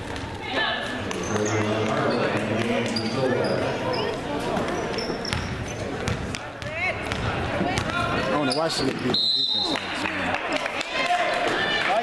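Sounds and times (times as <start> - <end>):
chatter and calls of people: 0.0 - 12.0
basketball bouncing on hardwood: 5.3 - 8.0.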